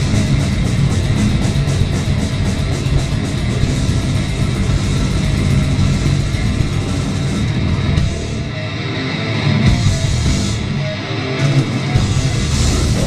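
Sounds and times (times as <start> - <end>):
bass guitar: 0.0 - 13.0
distorted electric guitar: 0.0 - 13.0
drums: 0.0 - 13.0.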